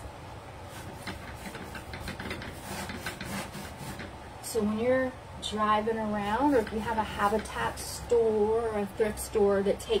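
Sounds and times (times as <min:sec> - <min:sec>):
steady low hum: 0:00.0 - 0:10.0
paintbrush strokes on plywood: 0:00.7 - 0:04.0, 0:06.2 - 0:07.7.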